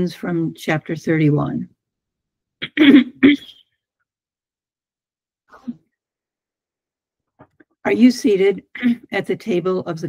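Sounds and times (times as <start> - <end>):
woman coughing: 2.6 - 3.6.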